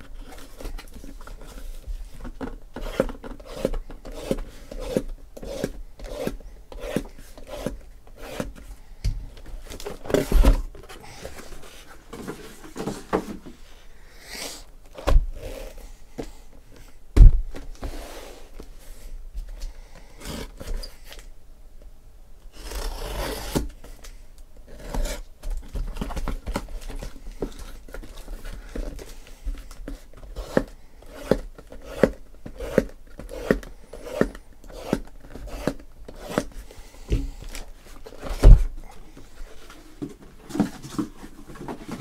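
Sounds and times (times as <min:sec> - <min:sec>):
cardboard rubbing and scraping: 0:17.8 - 0:18.7.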